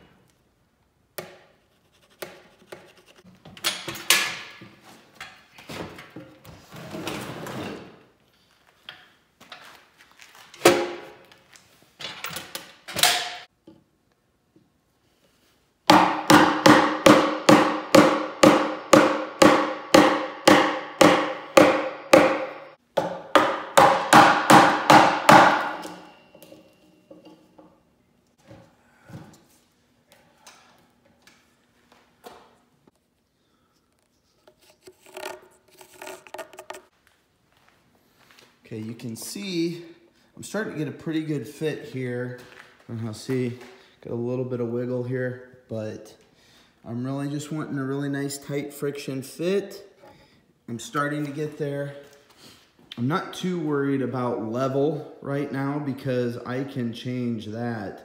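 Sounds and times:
scraping on wood: 33.9 - 36.9.

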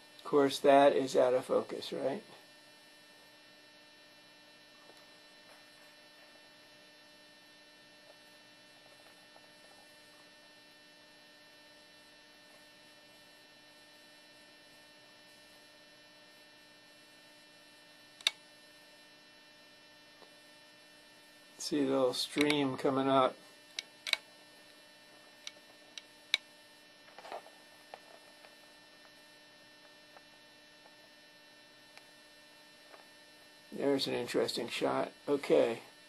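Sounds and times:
faint electrical hum: 0.0 - 36.0
sharp click: 18.2 - 18.4, 22.3 - 22.6, 23.7 - 24.3.

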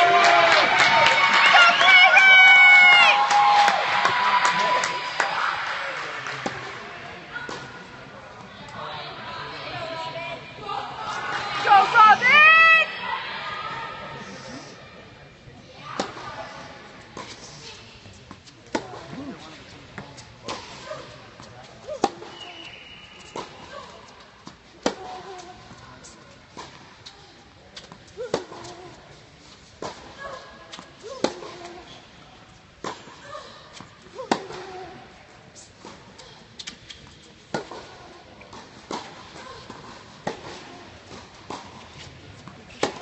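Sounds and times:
tennis ball struck by racquets: 21.9 - 22.4, 30.7 - 31.8, 33.7 - 34.8, 37.5 - 43.0.

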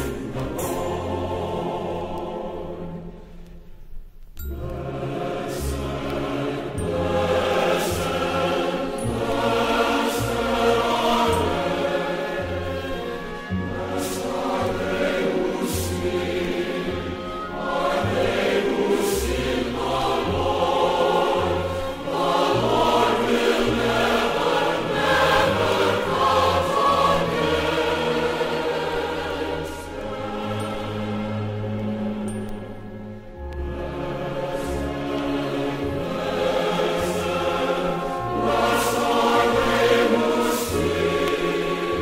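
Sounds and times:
choir singing sustained chords: 0.0 - 42.0
instrumental accompaniment: 0.0 - 42.0.

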